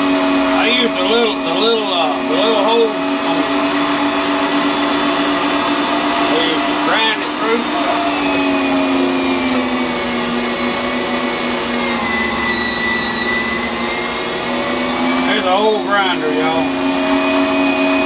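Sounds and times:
electric meat grinder motor humming: 0.0s - 18.0s.

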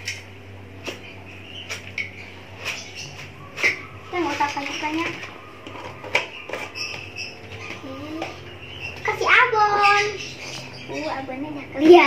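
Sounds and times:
girl's voice: 4.1s - 5.2s, 9.0s - 10.2s, 10.9s - 12.0s.

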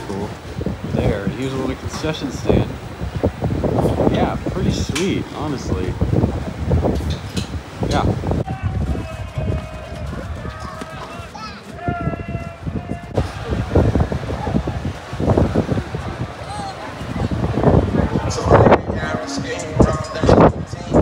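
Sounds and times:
people talking and calling out: 0.0s - 21.0s
wind rumbling on microphone: 0.0s - 21.0s.

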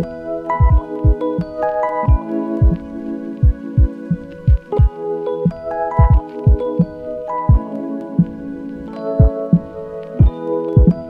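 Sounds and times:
low thudding beat: 0.0s - 6.9s, 7.5s - 8.4s, 9.2s - 11.0s
melody of held notes: 0.0s - 11.0s.

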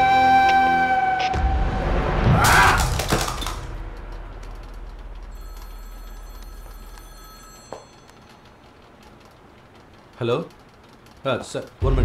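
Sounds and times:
loud hit: 1.4s - 5.3s
low rumble: 1.4s - 6.6s
phone ringing quietly: 5.2s - 9.4s.

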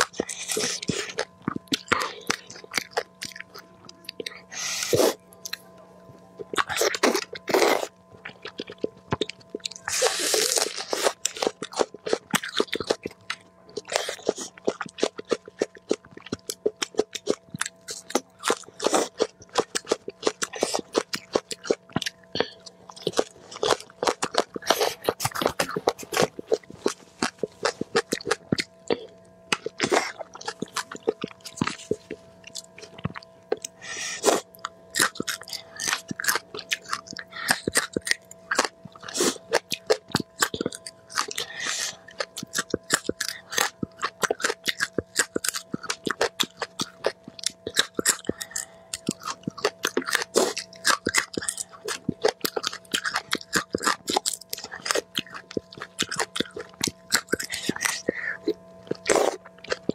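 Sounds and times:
chewing and crunching food: 0.0s - 59.9s
faint steady hum: 0.0s - 59.9s
wet mouth sounds: 6.5s - 59.9s.

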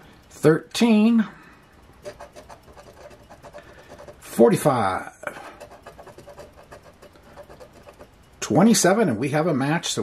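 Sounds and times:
coin scraping lottery ticket: 2.0s - 4.8s, 5.4s - 8.1s.

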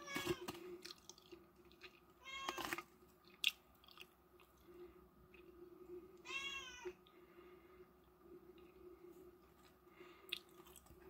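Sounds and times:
cat meowing: 6.2s - 7.0s.

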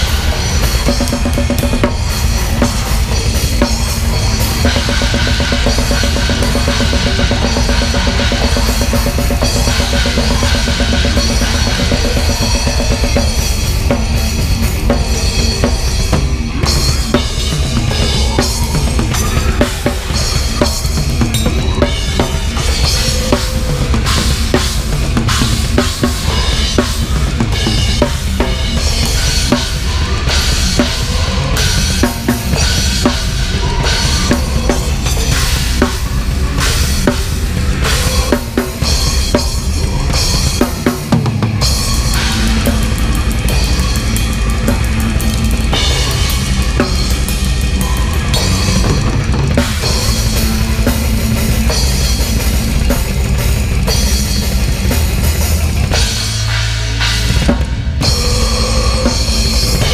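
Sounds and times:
death metal drumming: 0.0s - 59.9s
guitars and bass: 0.0s - 59.9s.

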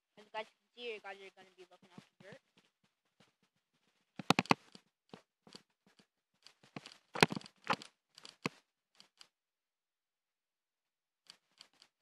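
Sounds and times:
crackling and crunching: 5.5s - 9.3s.

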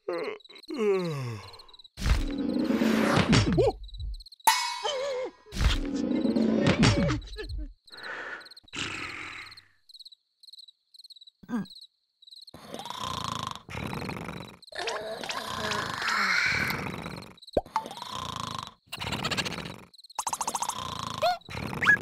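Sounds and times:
cartoon creature groaning and sighing: 0.0s - 3.8s, 5.1s - 9.7s, 11.4s - 11.8s, 12.6s - 19.8s, 20.8s - 22.0s
faint cricket chirping: 0.0s - 21.9s.

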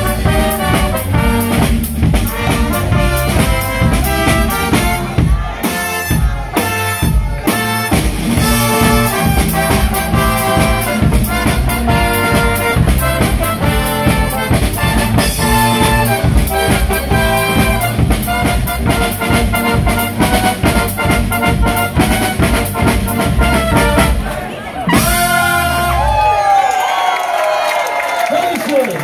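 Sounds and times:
bass drum and cymbals: 0.0s - 24.3s, 24.9s - 26.4s
trumpets and trombones: 0.0s - 26.5s.

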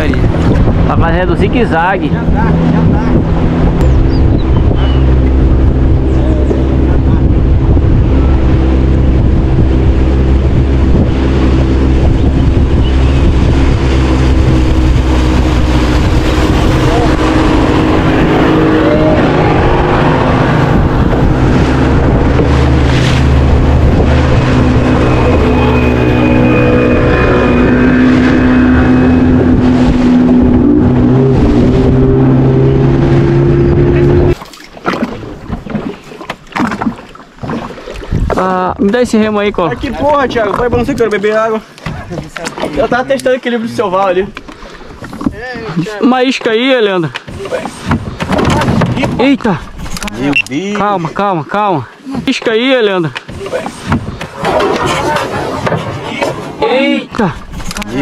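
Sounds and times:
boat motor running: 0.0s - 58.0s
wind and water rushing: 0.0s - 58.0s.

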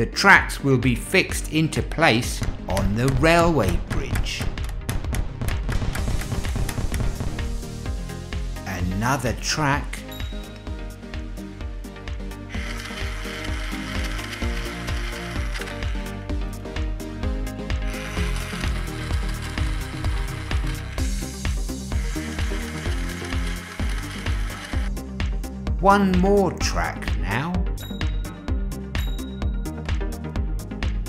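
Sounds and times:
background music with steady beat: 0.0s - 31.0s
buzzing power tool effect: 12.4s - 16.2s, 17.6s - 25.0s.

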